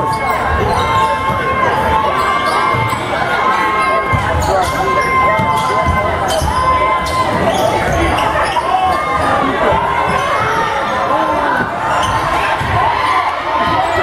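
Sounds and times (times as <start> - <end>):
voices echoing in gym: 0.0 - 14.0.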